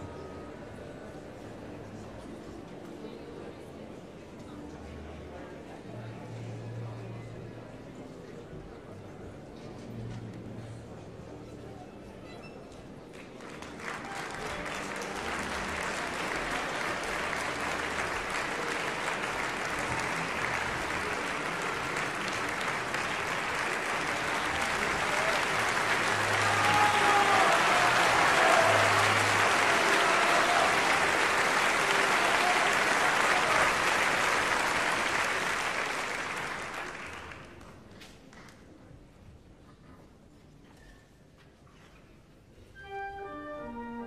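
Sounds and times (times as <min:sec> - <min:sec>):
audience applauding: 0:13.1 - 0:37.9.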